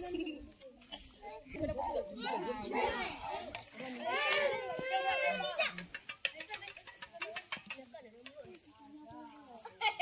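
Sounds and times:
toddler crying: 0:04.0 - 0:05.6.

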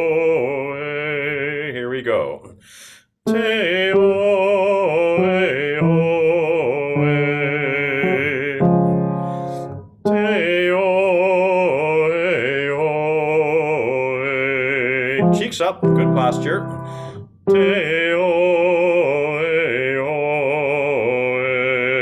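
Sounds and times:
man singing vocal exercise: 0:00.0 - 0:22.0
breath: 0:02.5 - 0:03.2, 0:09.2 - 0:09.8, 0:16.8 - 0:17.3.

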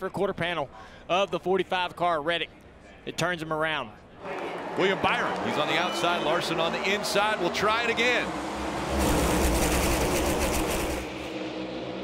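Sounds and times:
race cars at full throttle: 0:04.6 - 0:12.0.

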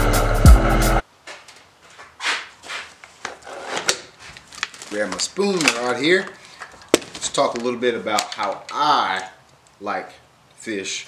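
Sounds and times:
fishing rods rubbing and rustling: 0:01.9 - 0:09.3.

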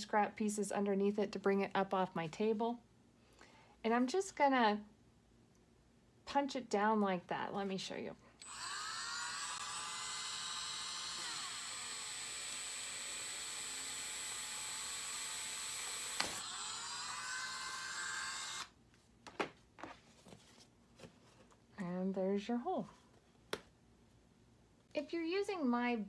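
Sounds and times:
rotary tool whining: 0:08.4 - 0:18.8.

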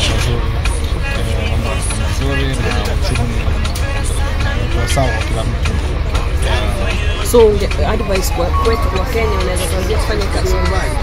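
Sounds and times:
bus engine rumble: 0:00.0 - 0:11.0
voices: 0:00.0 - 0:11.0
background music: 0:00.4 - 0:11.0.

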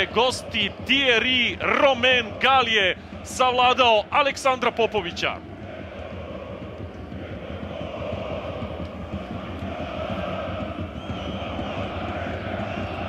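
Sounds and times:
crowd chanting: 0:00.0 - 0:13.0
stadium crowd din: 0:00.0 - 0:13.0.

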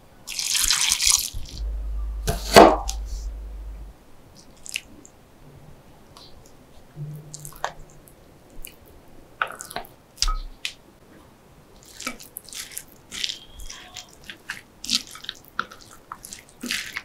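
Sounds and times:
soft thump: 0:01.4 - 0:03.9.

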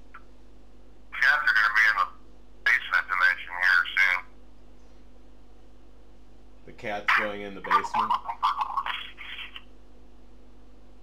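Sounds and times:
low room hum: 0:00.0 - 0:11.0
person speaking: 0:01.1 - 0:04.3, 0:06.7 - 0:09.6.

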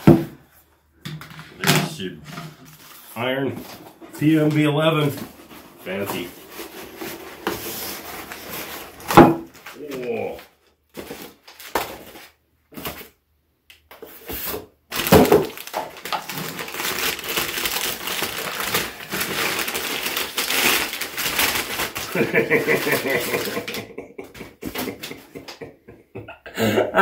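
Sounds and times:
packing paper crinkling: 0:14.9 - 0:23.9.

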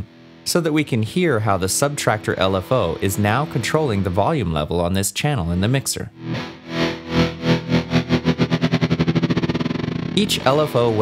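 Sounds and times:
guitar loop with pulsing tremolo: 0:00.0 - 0:04.8, 0:06.1 - 0:11.0.

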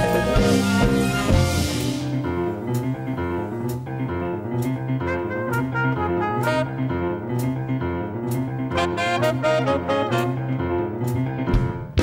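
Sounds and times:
live jazz band playing: 0:00.0 - 0:12.0.

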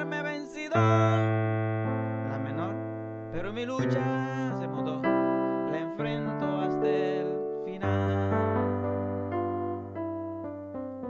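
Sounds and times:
keyboard piano chords: 0:00.0 - 0:11.0.

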